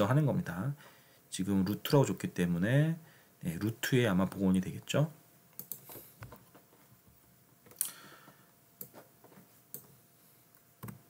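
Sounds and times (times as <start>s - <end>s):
faint computer clicks: 5.6s - 6.6s.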